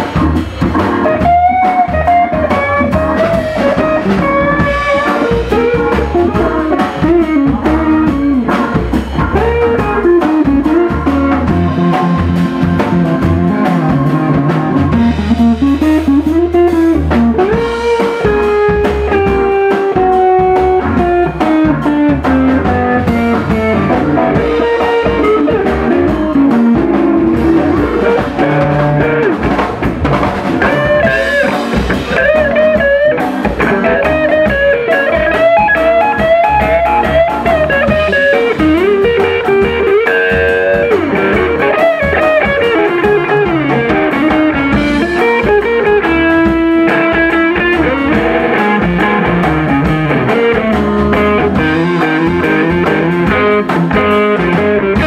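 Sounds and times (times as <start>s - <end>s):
drum kit: 0.0s - 55.0s
electric guitar melodic lines: 0.0s - 55.0s.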